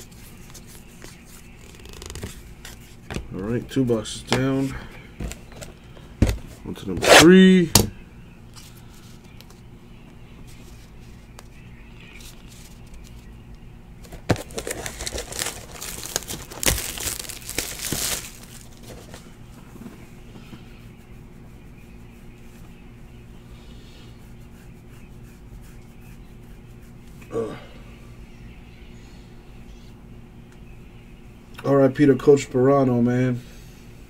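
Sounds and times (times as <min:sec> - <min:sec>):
low room hum: 0:00.0 - 0:34.0
wrapping crinkling and tearing: 0:14.1 - 0:19.2.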